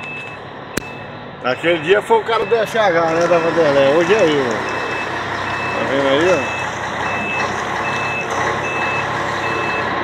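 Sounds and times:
diesel engine running: 0:00.0 - 0:10.0
truck reversing alarm beeping: 0:00.0 - 0:10.0.

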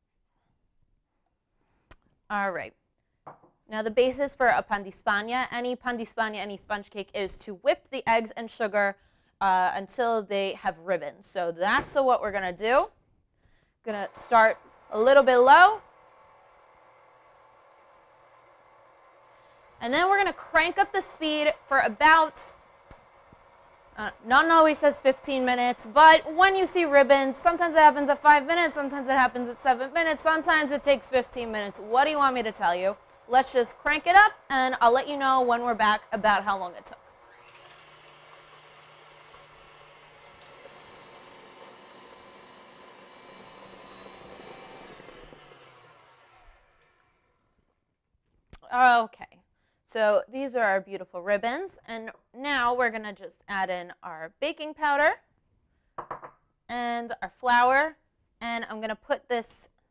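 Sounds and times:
stand mixer running: 0:14.1 - 0:47.4.

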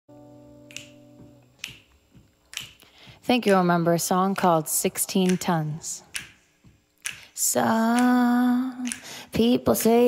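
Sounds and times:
finger snaps: 0:00.6 - 0:03.1, 0:05.2 - 0:10.0.

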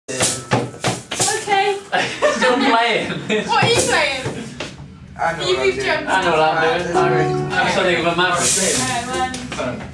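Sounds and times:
laughter: 0:01.9 - 0:03.5
acoustic guitar strumming: 0:06.9 - 0:09.2.

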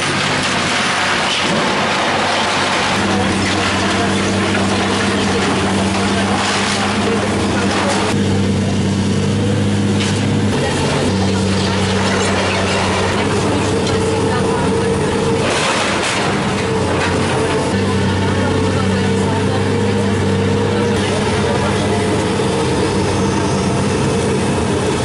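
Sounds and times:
excavator diesel engine droning: 0:00.0 - 0:25.0.

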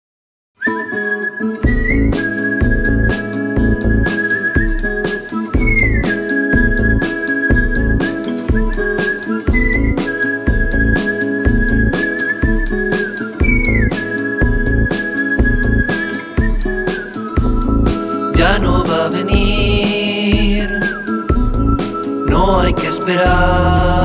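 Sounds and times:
whistling melody: 0:00.6 - 0:24.0
instrumental backing with beat: 0:01.6 - 0:24.0.

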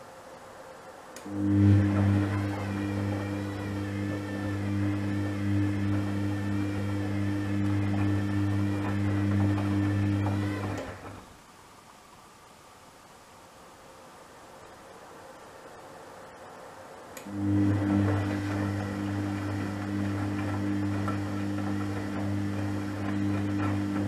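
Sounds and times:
washing machine motor hum: 0:00.6 - 0:11.5, 0:14.8 - 0:24.0.

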